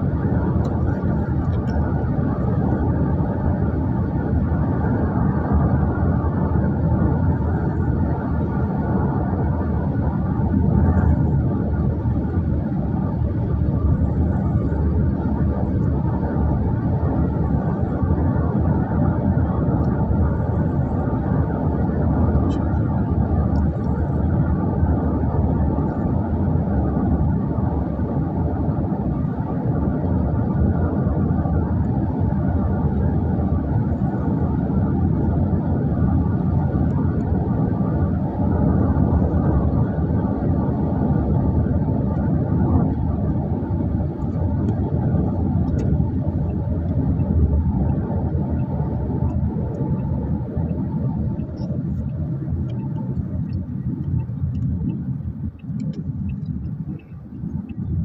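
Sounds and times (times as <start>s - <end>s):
road and engine rumble: 0.0s - 58.0s.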